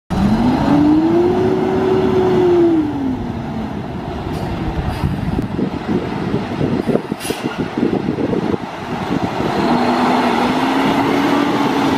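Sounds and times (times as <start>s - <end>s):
diesel truck engine pulling away: 0.1s - 11.9s.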